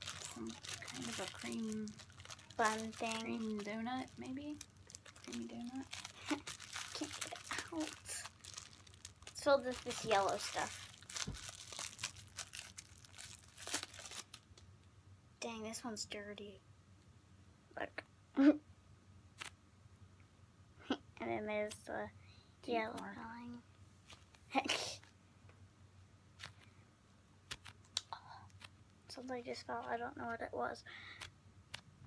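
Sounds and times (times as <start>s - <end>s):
plastic wrapper crinkling: 0.0s - 14.6s.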